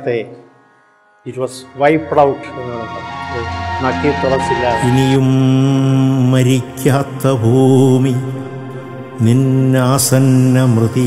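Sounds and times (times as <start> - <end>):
musical accompaniment: 0.4 - 11.0
man chanting low held notes: 1.3 - 11.0.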